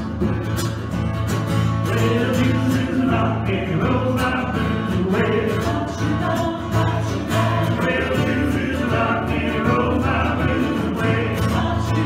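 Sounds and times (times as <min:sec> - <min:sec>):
acoustic guitar: 0:00.0 - 0:12.0
group singing worship song: 0:01.8 - 0:12.0.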